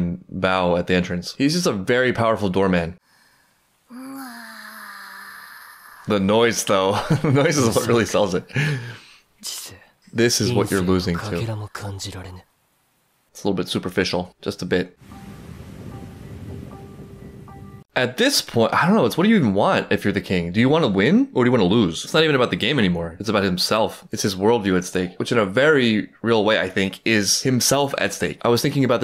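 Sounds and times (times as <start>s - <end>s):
cartoon character moaning: 3.9s - 6.2s
soft sparse background music: 13.4s - 29.0s.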